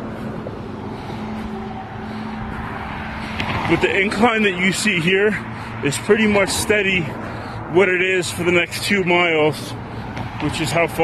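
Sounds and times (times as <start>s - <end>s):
cars driving by: 0.0s - 11.0s
faint low engine hum: 0.0s - 11.0s.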